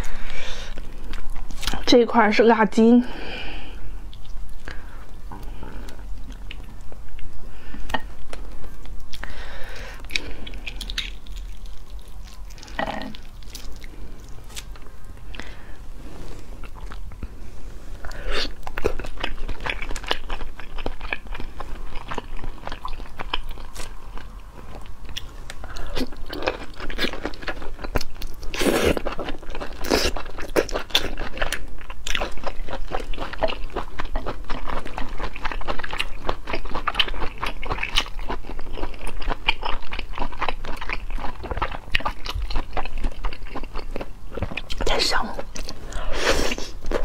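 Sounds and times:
wet crunchy chewing: 10.0 - 15.5, 18.4 - 44.8.

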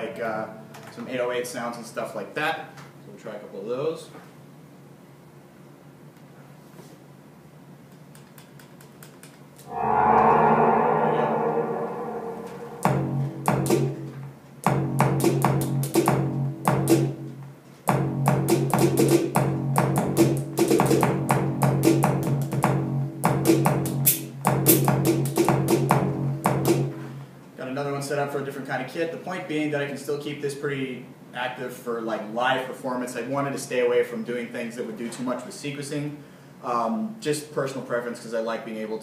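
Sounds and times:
held synth chord: 9.7 - 13.5
steady low synth note: 9.7 - 13.6.

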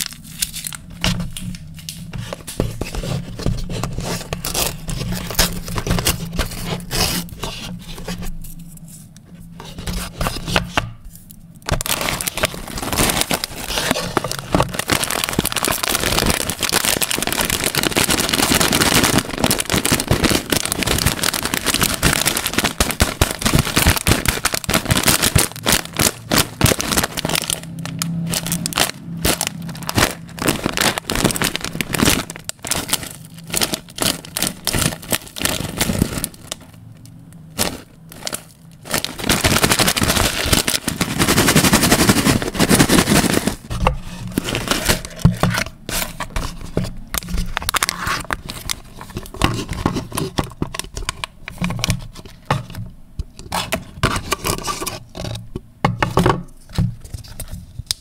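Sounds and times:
foil pouch crinkling: 0.0 - 8.8, 11.6 - 55.4.

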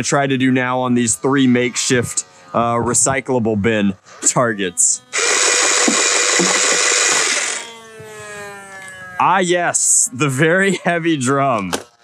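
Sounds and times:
motor winding down whine: 0.0 - 10.9
toy blaster motor whirring: 4.2 - 10.0.

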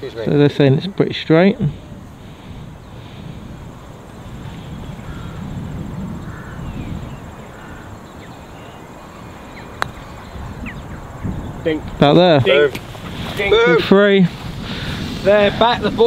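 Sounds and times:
wind rumble on microphone: 0.0 - 16.0.

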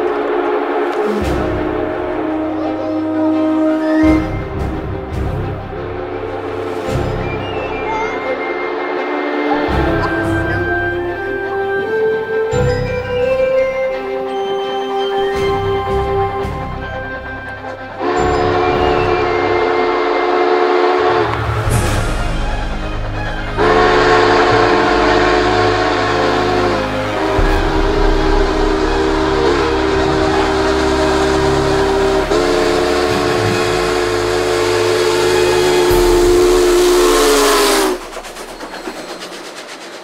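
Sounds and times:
locomotive engine rumble: 0.0 - 40.0
steam locomotive chime whistle: 0.0 - 40.0.

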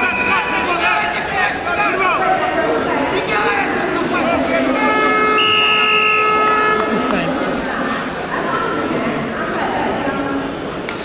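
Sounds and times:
arena chatter: 0.0 - 11.0.

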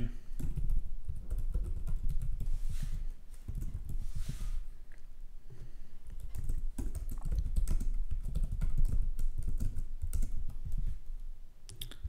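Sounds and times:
typing on computer keyboard: 0.4 - 2.5, 6.2 - 10.8.

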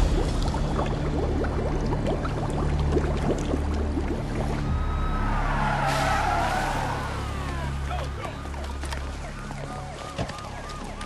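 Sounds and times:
water bubbling: 0.0 - 5.1
low rumble: 0.0 - 7.3
vehicle tyres skidding screech: 4.8 - 7.9.

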